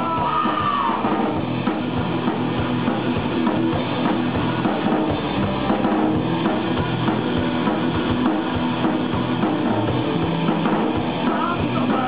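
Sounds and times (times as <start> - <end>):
drum kit with kick-drum beat: 0.0 - 12.0
electric guitars: 0.0 - 12.0.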